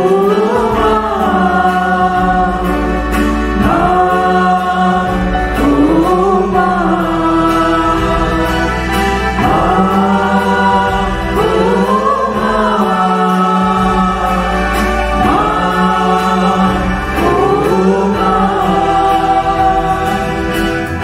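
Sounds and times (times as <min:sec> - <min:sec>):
acoustic guitar: 0:00.0 - 0:21.0
choir singing a hymn: 0:00.0 - 0:21.0
held chord accompaniment: 0:00.0 - 0:21.0.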